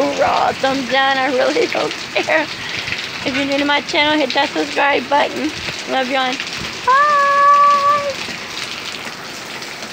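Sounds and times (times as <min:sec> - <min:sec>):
heavy rain falling: 0:00.0 - 0:09.9
woman calling out: 0:06.8 - 0:08.2.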